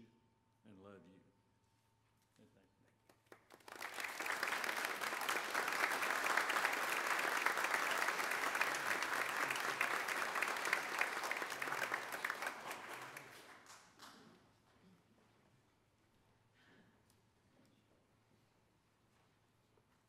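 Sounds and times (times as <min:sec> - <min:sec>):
crowd applauding: 0:03.3 - 0:14.2.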